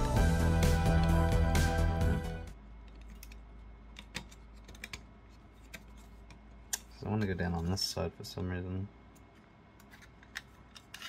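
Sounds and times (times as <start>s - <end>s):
background music: 0.0s - 2.6s.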